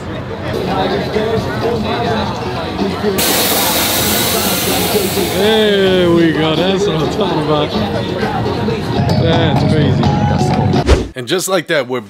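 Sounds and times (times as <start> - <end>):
loud steady hiss: 3.2 - 6.6.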